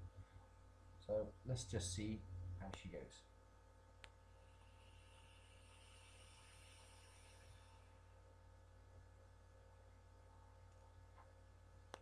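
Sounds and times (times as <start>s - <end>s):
vape atomiser hissing: 4.4s - 8.1s.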